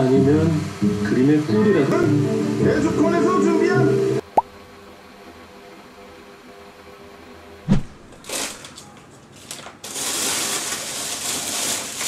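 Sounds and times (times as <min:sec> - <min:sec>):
speech: 0:00.0 - 0:04.0
music: 0:00.0 - 0:04.2.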